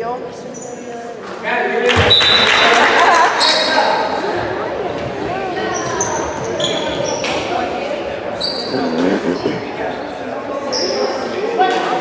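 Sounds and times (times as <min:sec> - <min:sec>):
voices in echoing gym: 0:00.0 - 0:12.0
sneaker squeaks: 0:00.5 - 0:00.9, 0:05.6 - 0:07.6, 0:08.4 - 0:11.2.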